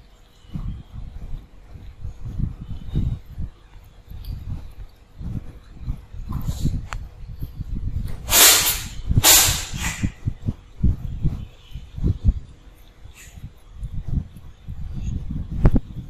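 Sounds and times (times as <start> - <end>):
cats chewing and lapping: 0.0 - 8.2, 10.2 - 16.0
cat hissing: 8.3 - 10.1.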